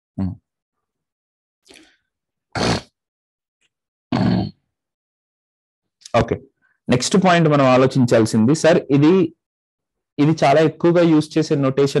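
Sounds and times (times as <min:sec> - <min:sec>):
man's throaty vocal sound: 0:00.2 - 0:00.4.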